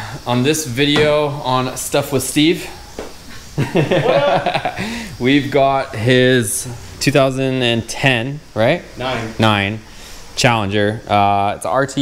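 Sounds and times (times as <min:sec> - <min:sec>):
man chuckling: 0:03.6 - 0:05.2.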